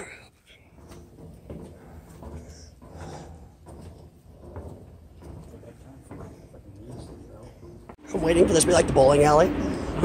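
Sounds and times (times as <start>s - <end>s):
footsteps on steel stairs: 0.5s - 8.8s.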